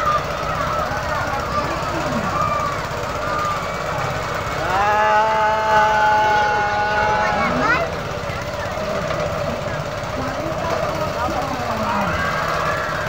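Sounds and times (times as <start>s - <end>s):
rattling ride motor rumble: 0.0s - 13.0s.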